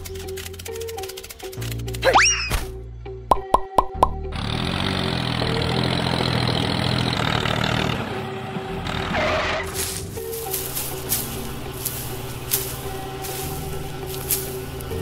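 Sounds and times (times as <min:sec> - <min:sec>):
background music: 0:00.0 - 0:15.0
short cartoon plops: 0:03.3 - 0:04.2
engine-like running sound: 0:04.2 - 0:15.0.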